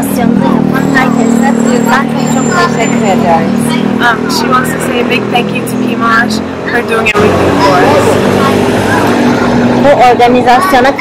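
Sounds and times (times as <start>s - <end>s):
woman talking: 0.0s - 6.4s
vehicle engine hum: 0.0s - 11.0s.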